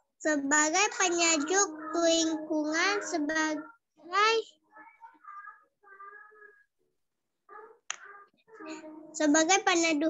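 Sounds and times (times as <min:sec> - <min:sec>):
child reading aloud over video call: 0:00.0 - 0:10.0.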